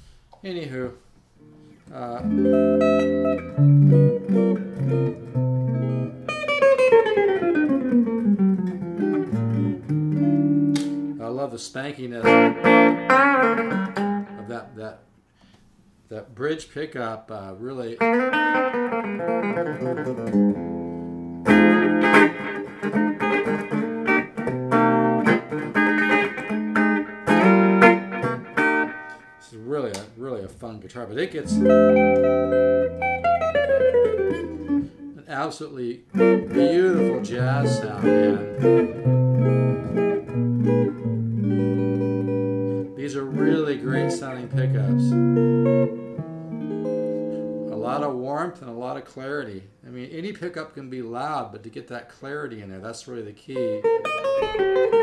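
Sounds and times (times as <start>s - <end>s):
man talking: 0.4s - 1.0s, 1.8s - 2.6s, 11.2s - 12.4s, 14.3s - 15.0s, 16.1s - 18.1s, 29.4s - 31.7s, 35.2s - 38.6s, 43.0s - 45.2s, 47.7s - 53.9s
electric guitar notes and chords: 1.4s - 11.2s, 12.2s - 14.6s, 18.0s - 30.0s, 31.4s - 35.3s, 36.0s - 48.0s, 53.6s - 55.0s.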